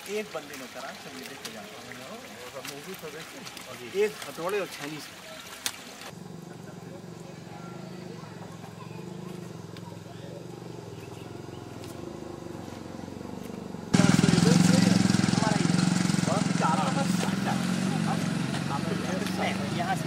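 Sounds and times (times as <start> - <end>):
people talking outdoors: 0.0 - 20.0.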